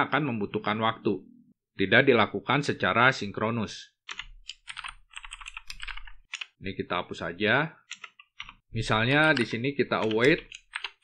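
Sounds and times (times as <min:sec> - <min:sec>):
typing on computer keyboard: 0:04.1 - 0:06.6, 0:07.9 - 0:11.0.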